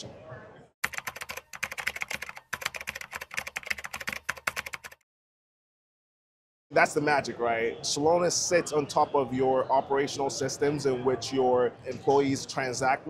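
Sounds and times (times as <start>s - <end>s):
computer keyboard typing: 0.8s - 5.0s.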